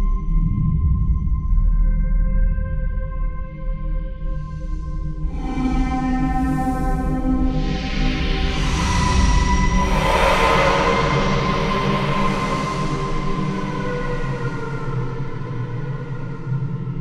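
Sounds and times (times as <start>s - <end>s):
synthesizer pad over low drone: 4.3s - 17.0s
hissing swell: 7.6s - 17.0s.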